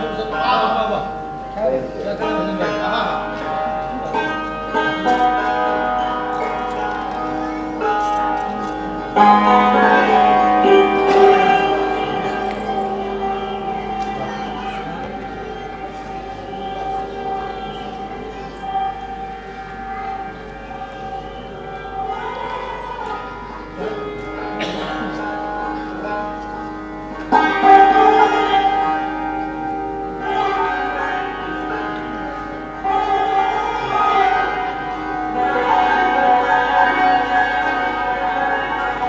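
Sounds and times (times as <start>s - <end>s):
hammered dulcimer strings ringing: 0.0s - 39.0s.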